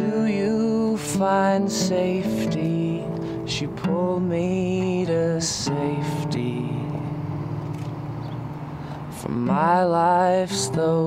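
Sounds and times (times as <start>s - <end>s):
person singing: 0.0s - 7.4s, 9.1s - 11.0s
acoustic guitar chord ringing: 0.0s - 11.0s.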